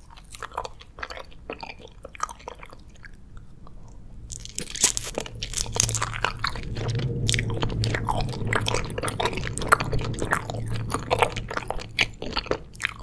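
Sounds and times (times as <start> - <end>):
wet chewing: 0.0 - 13.0
gummy crunch: 4.3 - 13.0.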